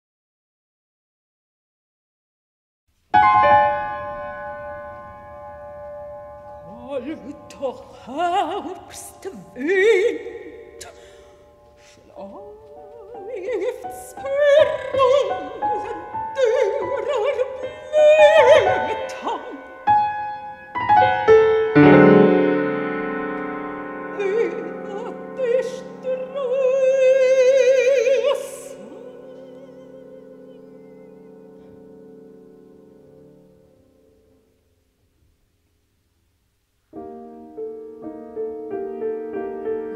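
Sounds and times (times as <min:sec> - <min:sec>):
piano playing: 0:03.1 - 0:34.9, 0:36.9 - 0:39.9
piano chord ringing: 0:03.2 - 0:08.5, 0:19.8 - 0:25.5.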